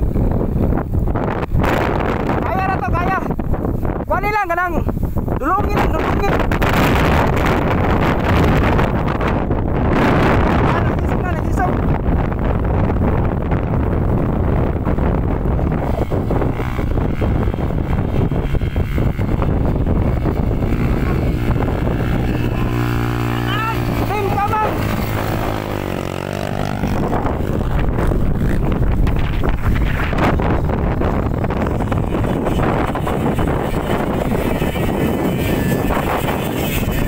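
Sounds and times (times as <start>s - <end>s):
motorcycle engine running: 0.0s - 37.0s
wind buffeting microphone: 0.0s - 37.0s.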